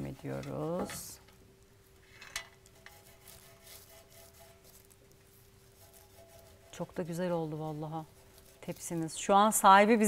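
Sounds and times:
steady faint hum: 0.0 - 10.0
fingertips rubbing on wood: 2.7 - 9.6.

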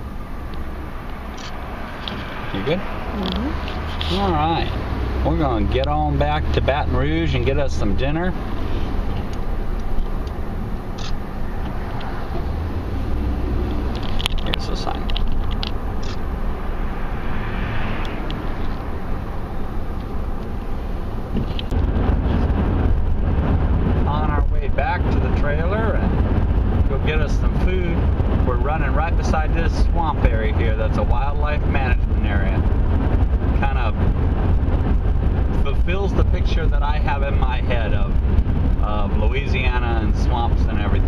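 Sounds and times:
car road noise: 0.0 - 41.0.

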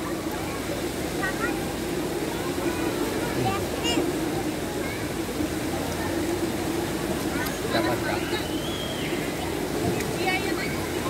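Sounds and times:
water rushing: 0.0 - 11.0.

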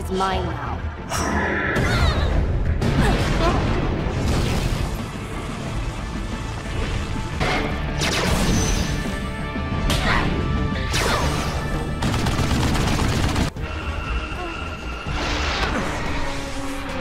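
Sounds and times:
dramatic orchestral music: 0.0 - 17.0.

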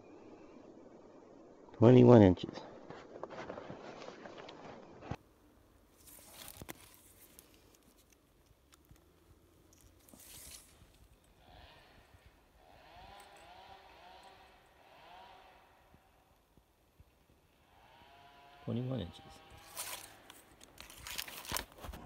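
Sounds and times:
handling rustle: 5.8 - 11.4, 19.5 - 22.0
tape measure zip: 10.0 - 11.0, 19.6 - 21.6.

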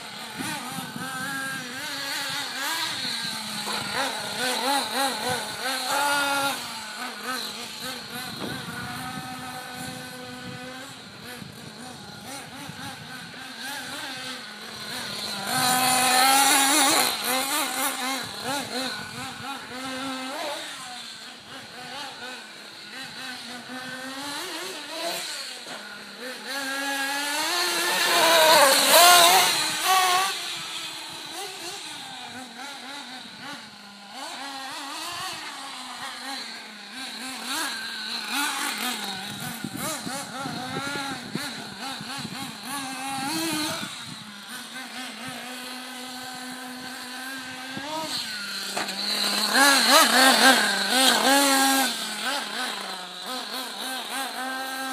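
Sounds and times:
small engine revving: 0.0 - 54.9.

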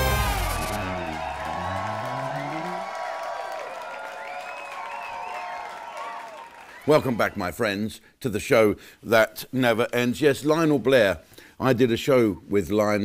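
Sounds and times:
theme music final hit: 0.0 - 2.1
crowd cheering and whooping: 0.0 - 7.0.

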